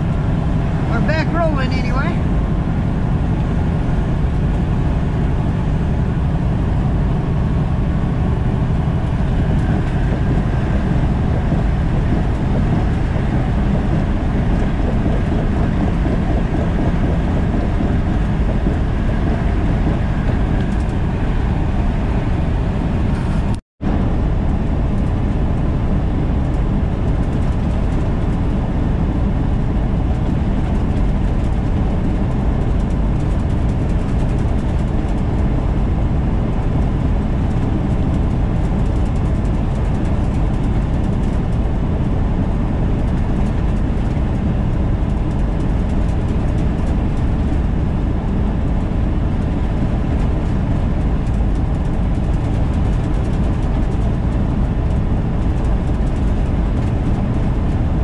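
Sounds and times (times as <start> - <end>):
truck engine drone: 0.0 - 58.0
tyre and road noise: 0.0 - 58.0.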